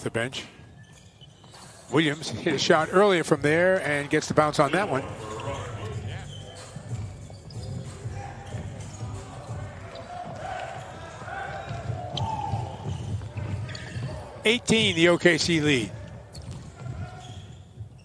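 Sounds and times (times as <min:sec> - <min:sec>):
players shouting: 0:08.0 - 0:16.0.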